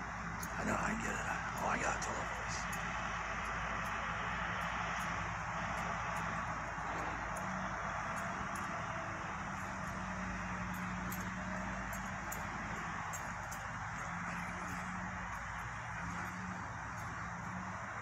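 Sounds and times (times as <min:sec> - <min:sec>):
distant heavy diesel machines droning: 0:00.0 - 0:18.0.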